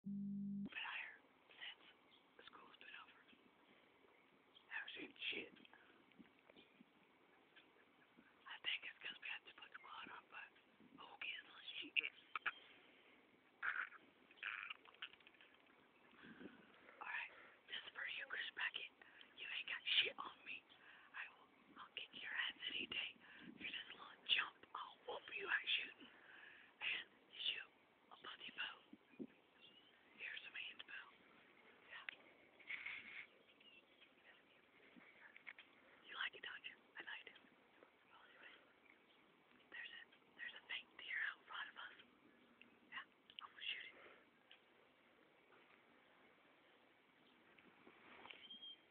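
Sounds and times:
person whispering: 0:00.7 - 0:03.3, 0:04.7 - 0:05.8, 0:08.5 - 0:12.5, 0:17.0 - 0:26.1, 0:26.8 - 0:28.9, 0:30.2 - 0:31.2, 0:31.8 - 0:33.0, 0:34.2 - 0:37.4, 0:38.1 - 0:38.7, 0:39.7 - 0:42.0, 0:42.9 - 0:44.1.

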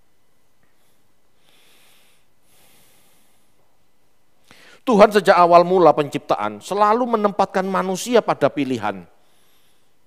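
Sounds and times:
man breathing through nose: 0:00.8 - 0:03.6, 0:04.4 - 0:04.8, 0:09.2 - 0:10.0.

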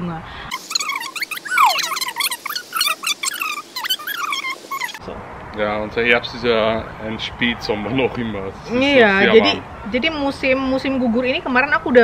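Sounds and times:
bird whistles: 0:00.5 - 0:05.0
small birds twittering: 0:00.5 - 0:05.0.

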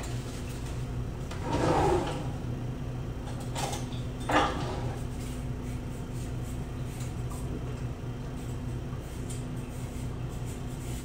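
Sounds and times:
drawer sliding open with scrape: 0:01.3 - 0:02.4.

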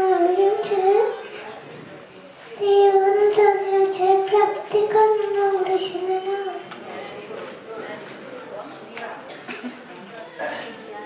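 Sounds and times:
girl singing into a microphone: 0:00.0 - 0:01.4, 0:02.6 - 0:06.7.

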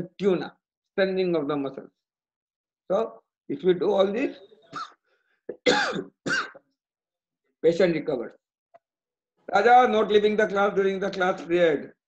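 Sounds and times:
man coughing: 0:04.7 - 0:06.6
man clearing throat: 0:04.8 - 0:06.6.

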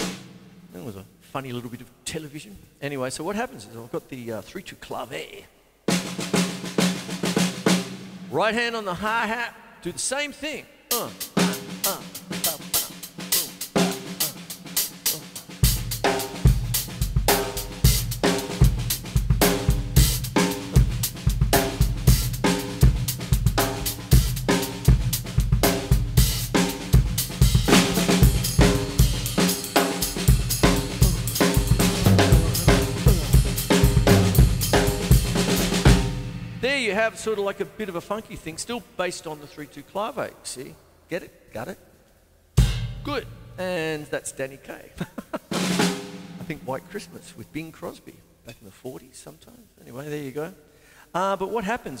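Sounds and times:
drum kit funky groove: 0:00.0 - 0:00.8, 0:10.9 - 0:36.8, 0:42.6 - 0:43.3, 0:45.3 - 0:47.0
bass drum: 0:11.4 - 0:36.8, 0:42.6 - 0:43.6.

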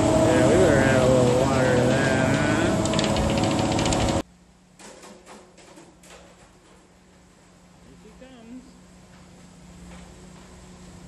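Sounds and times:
diesel truck engine running: 0:00.0 - 0:04.2.

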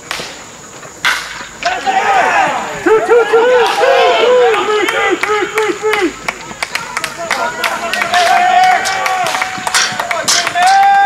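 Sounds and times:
baseball bat hitting ball: 0:01.0 - 0:01.8, 0:08.0 - 0:11.0
crowd shouting and cheering: 0:01.6 - 0:11.0.

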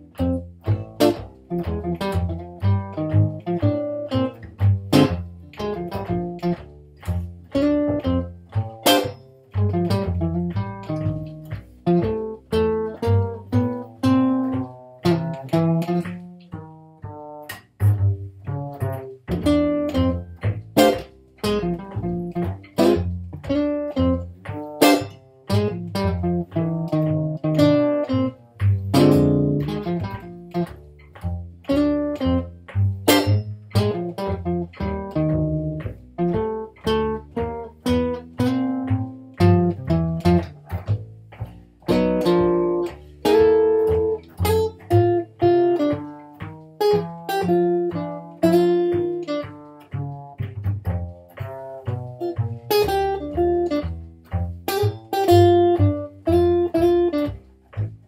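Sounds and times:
jazz guitar: 0:00.0 - 0:58.0
plucked double bass: 0:00.0 - 0:58.0.

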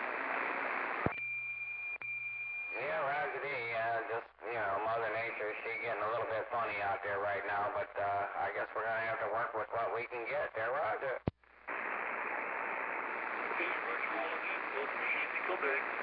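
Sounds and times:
radio receiver hiss: 0:00.0 - 0:01.4, 0:11.2 - 0:16.0
radio click: 0:00.9 - 0:01.2
distorted voice over radio: 0:02.8 - 0:11.3, 0:13.4 - 0:16.0.

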